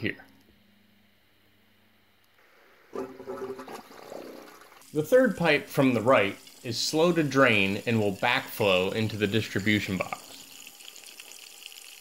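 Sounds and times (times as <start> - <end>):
liquid pouring into concrete box: 2.9 - 5.5, 6.1 - 12.0.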